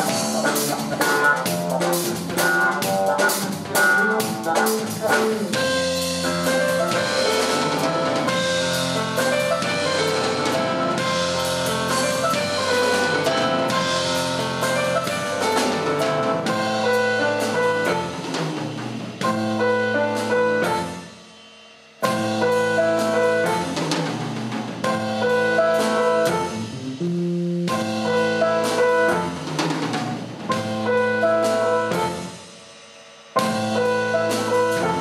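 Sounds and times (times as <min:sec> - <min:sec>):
keyboard chords: 0:00.0 - 0:18.3, 0:24.9 - 0:29.4
electric bass: 0:00.0 - 0:21.0, 0:22.0 - 0:32.4, 0:33.4 - 0:35.0
drum kit: 0:00.0 - 0:35.0.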